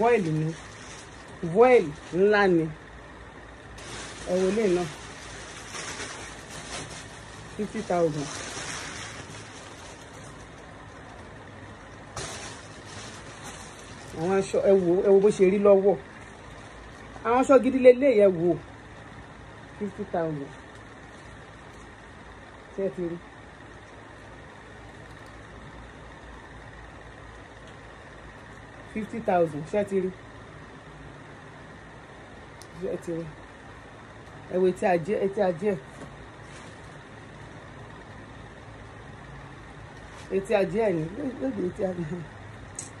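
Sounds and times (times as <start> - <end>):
low hum: 0.0 - 43.0.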